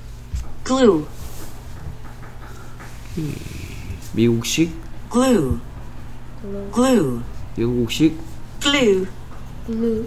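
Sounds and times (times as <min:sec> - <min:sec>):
low electrical hum: 0:00.0 - 0:10.0
low voice murmur: 0:03.1 - 0:04.0.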